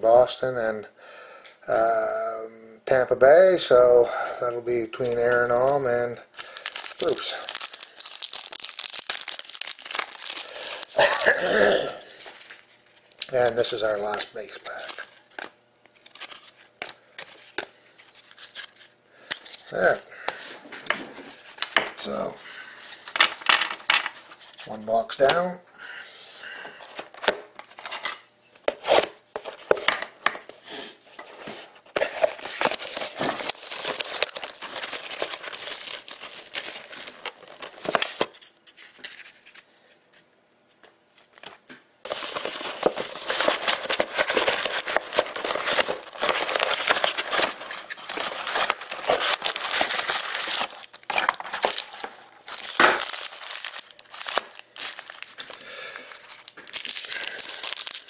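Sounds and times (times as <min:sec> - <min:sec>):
packaging crinkling and tearing: 0:06.3 - 0:20.0, 0:21.3 - 0:24.7, 0:31.9 - 0:39.6, 0:42.1 - 0:58.0.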